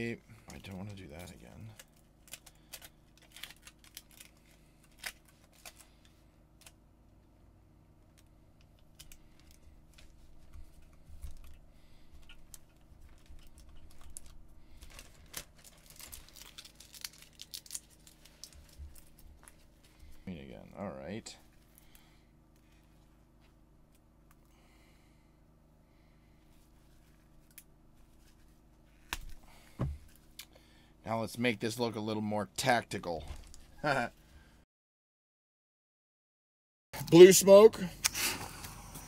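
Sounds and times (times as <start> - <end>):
foil tape crinkling and tearing: 0.5 - 6.8, 12.2 - 19.7
plastic zip bag rustling: 12.2 - 19.9.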